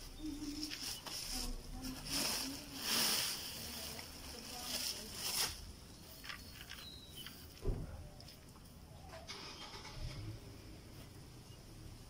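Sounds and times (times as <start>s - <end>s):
soil and leaves rustling: 0.0s - 11.2s.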